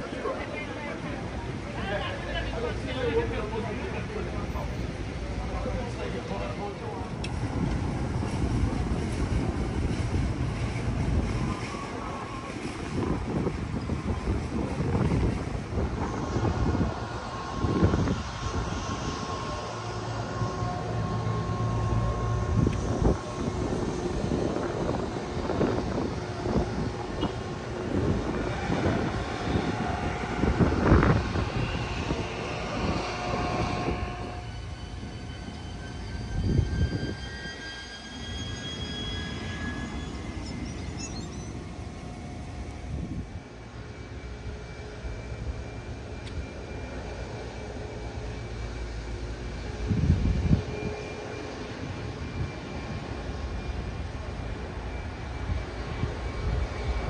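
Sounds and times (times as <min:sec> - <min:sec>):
jet engine high whine: 0:00.0 - 0:57.0
wind gusts on microphone: 0:07.1 - 0:57.0.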